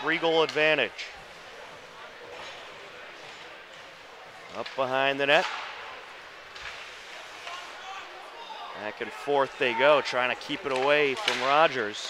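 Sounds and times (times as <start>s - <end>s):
faint voices in arena: 0.0s - 12.0s
skates hissing on ice: 6.7s - 7.9s.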